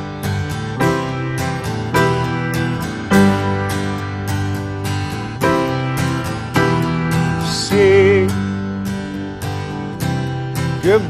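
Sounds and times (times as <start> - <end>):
acoustic guitar strumming: 0.0 - 11.0.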